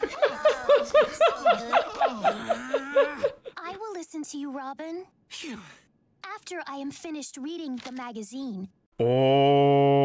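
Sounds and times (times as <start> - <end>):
cartoon characters laughing: 0.0 - 3.5.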